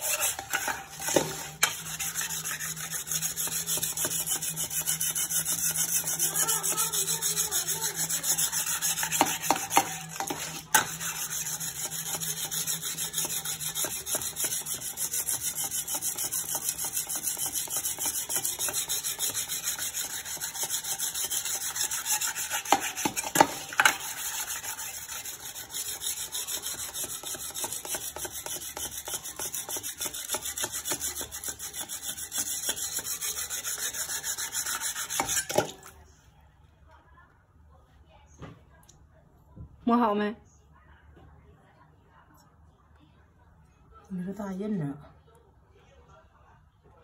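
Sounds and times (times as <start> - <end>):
whetstone scraping blade: 0.0 - 35.7.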